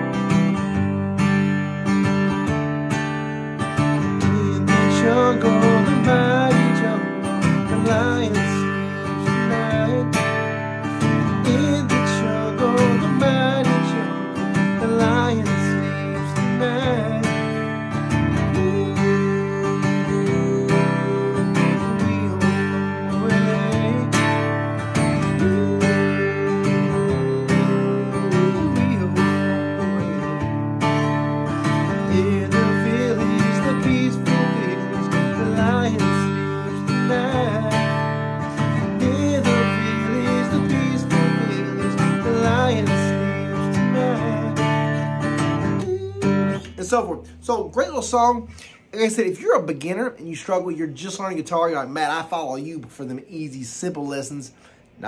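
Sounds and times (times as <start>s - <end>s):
acoustic guitar strumming: 0.0s - 55.0s
person humming a melody: 45.6s - 46.7s.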